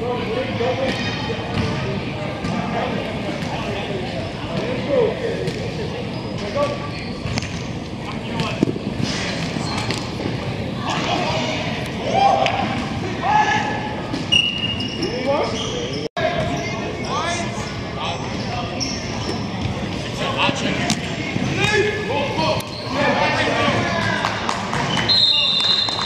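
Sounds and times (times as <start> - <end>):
players shouting in a hall: 10.8 - 14.0
referee's whistle blast: 25.0 - 26.0.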